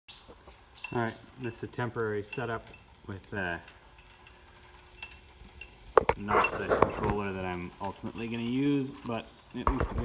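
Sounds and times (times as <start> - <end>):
faint electric motor hum: 0.1 - 10.0.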